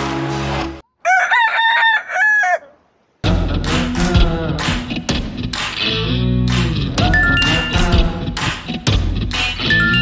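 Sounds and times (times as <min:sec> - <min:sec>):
background music: 0:00.0 - 0:00.8, 0:03.2 - 0:10.0
rooster crowing: 0:01.0 - 0:02.8.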